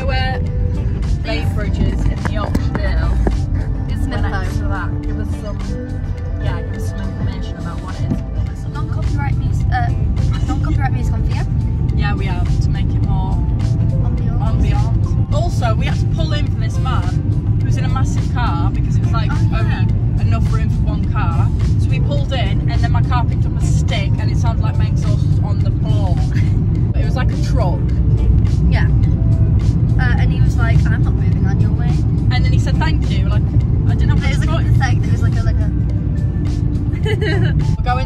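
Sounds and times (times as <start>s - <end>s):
car road and engine rumble: 0.0s - 38.0s.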